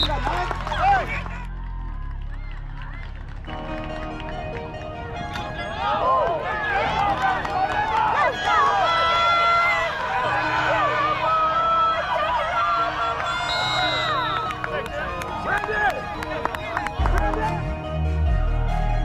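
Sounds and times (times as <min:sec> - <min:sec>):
crowd shouting and cheering: 0:00.0 - 0:19.0.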